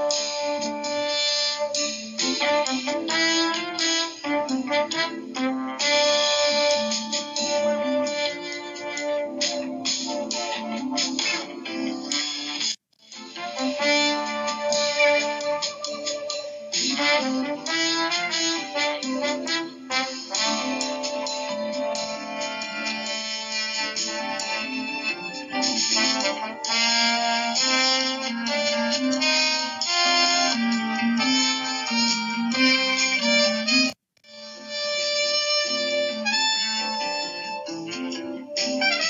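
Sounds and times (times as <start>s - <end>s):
instrumental background music: 0.0s - 39.0s.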